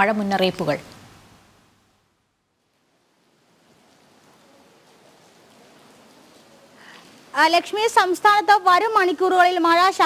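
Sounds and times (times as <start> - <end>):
faint steady rain: 0.0 - 10.0.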